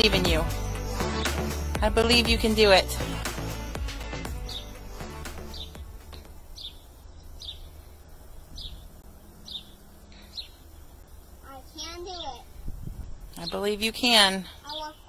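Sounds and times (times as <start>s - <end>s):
bird chirping: 0.0s - 15.0s.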